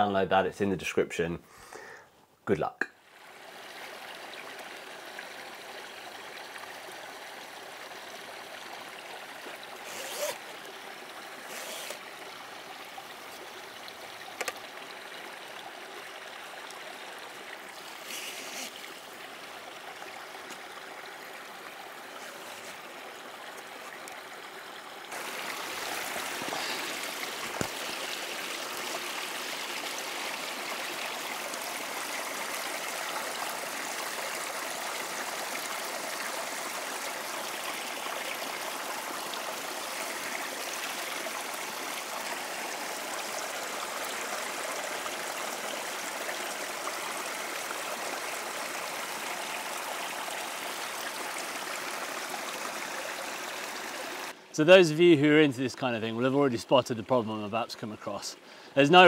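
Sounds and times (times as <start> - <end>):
stream rushing: 3.0 - 55.6.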